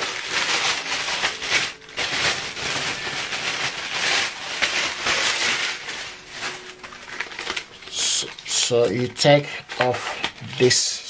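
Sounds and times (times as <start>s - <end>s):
packaging rustling and crinkling: 0.0s - 11.0s.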